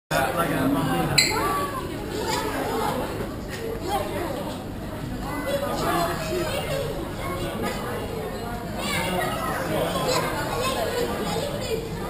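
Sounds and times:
indistinct chatter of people: 0.1s - 12.0s.

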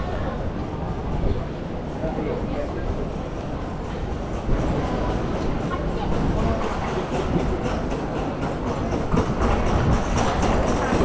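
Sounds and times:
low street rumble: 0.0s - 11.0s
people talking in crowd: 0.0s - 11.0s.

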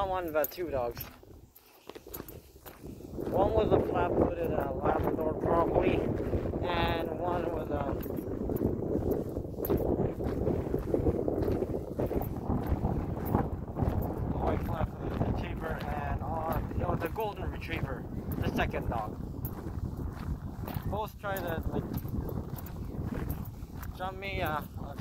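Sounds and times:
man's voice: 0.0s - 1.0s, 3.2s - 8.0s, 14.3s - 19.1s, 20.8s - 21.9s, 23.9s - 25.0s
footsteps walking: 0.0s - 25.0s
wind rumbling on microphone: 0.0s - 25.0s.

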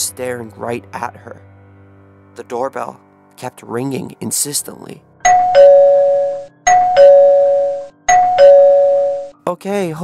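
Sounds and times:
two-tone doorbell chime: 5.2s - 9.4s.

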